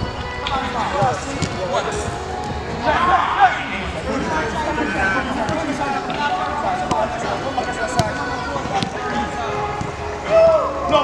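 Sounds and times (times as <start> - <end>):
players shouting: 2.8 - 11.0.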